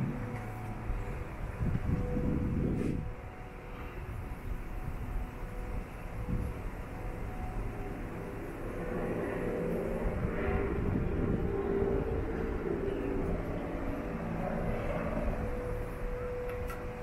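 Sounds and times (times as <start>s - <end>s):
distant engine rumble: 0.0s - 17.0s
steady tone: 0.0s - 17.0s.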